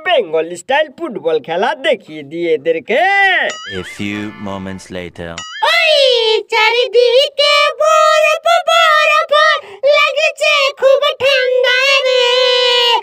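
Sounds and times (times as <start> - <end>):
high voice singing: 3.7 - 9.2.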